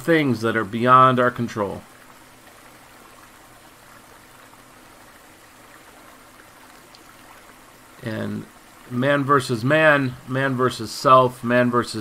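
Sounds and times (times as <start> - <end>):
stream running over rocks: 0.0 - 12.0.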